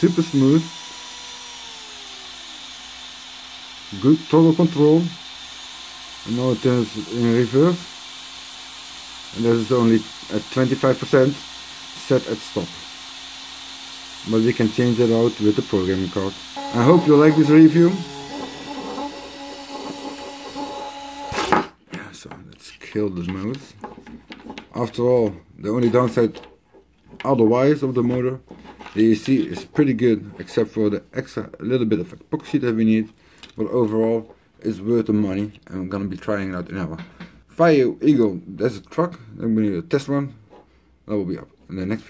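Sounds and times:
electric motor whine: 0.0 - 21.7
electric motor whine spinning down: 15.0 - 21.4.

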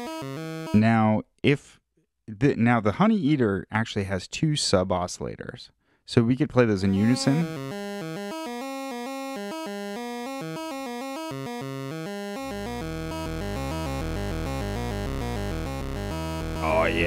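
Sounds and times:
synth bass sequence: 12.5 - 17.0.

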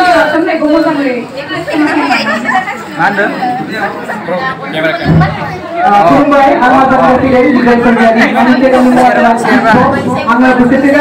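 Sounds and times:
women chattering: 0.0 - 6.5
low thump: 5.0 - 5.5.

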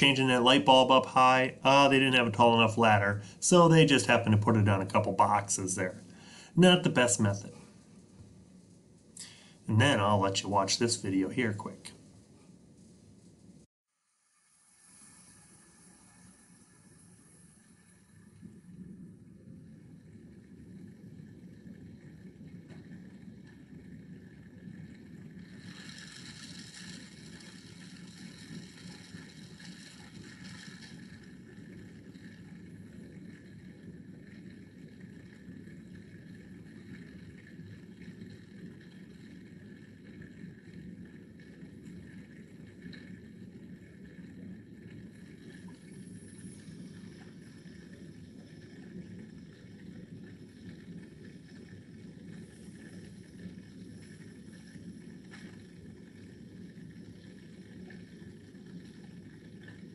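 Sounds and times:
hiss: 14.1 - 18.8, 25.4 - 31.3.

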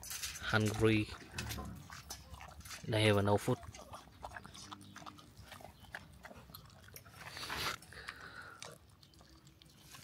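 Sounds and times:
puppy chewing clicks: 0.6 - 10.0.

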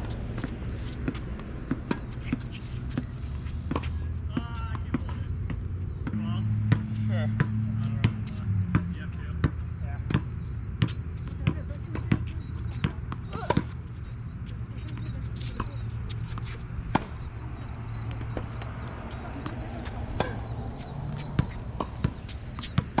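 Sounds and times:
ball bouncing on hard court: 0.0 - 14.0, 14.7 - 17.3, 17.9 - 23.0.

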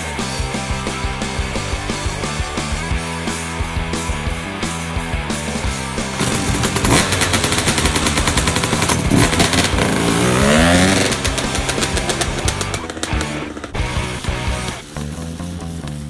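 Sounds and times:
rock music: 0.0 - 16.0
dirt bike engine revving: 4.2 - 16.0.

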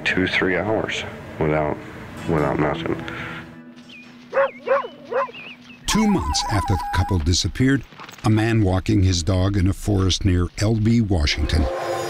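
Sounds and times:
dog barking: 4.3 - 5.4
low music drone: 11.2 - 12.0.

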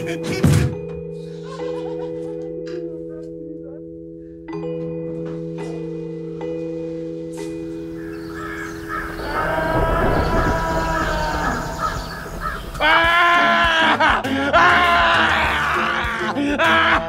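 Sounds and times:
crows cawing: 7.9 - 16.3.

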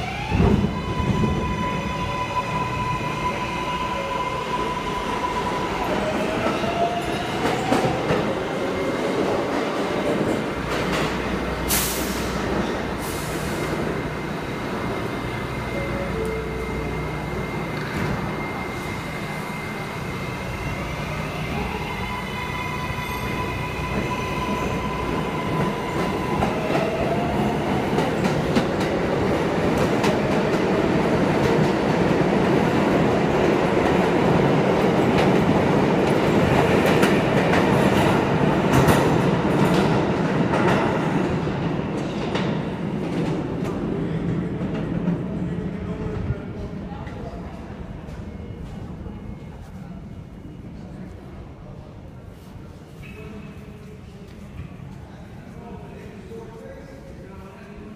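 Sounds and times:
subway train running noise: 0.0 - 57.9.

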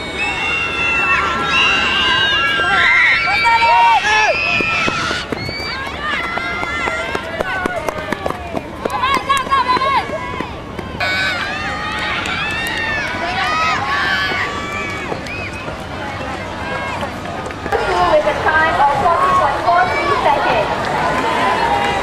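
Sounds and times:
high voices shouting and cheering: 0.0 - 22.0.

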